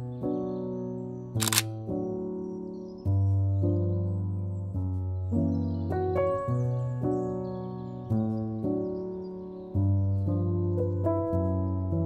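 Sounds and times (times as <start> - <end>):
background music with keyboard chords: 0.0 - 12.0
camera shutter click: 1.4 - 1.7.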